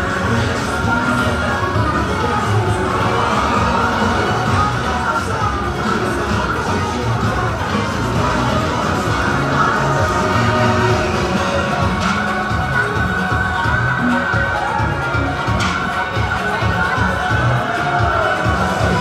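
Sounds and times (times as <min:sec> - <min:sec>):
children shouting: 0:00.0 - 0:19.0
crowd cheering: 0:00.0 - 0:19.0
parade music over loudspeakers: 0:00.0 - 0:19.0.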